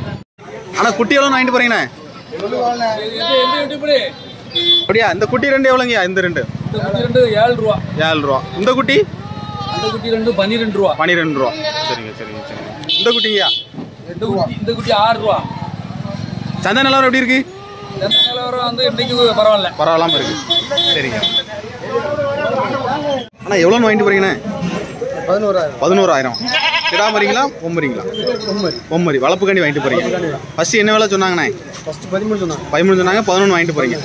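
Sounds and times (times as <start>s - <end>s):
men talking: 0.0s - 34.0s
goat bleating: 11.1s - 12.2s, 26.4s - 27.4s.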